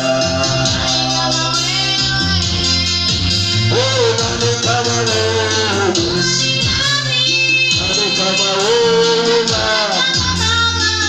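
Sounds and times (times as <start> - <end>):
man singing into microphone: 0.0 - 1.4, 3.6 - 6.8, 7.6 - 10.5
backing track with bass line: 0.0 - 11.0.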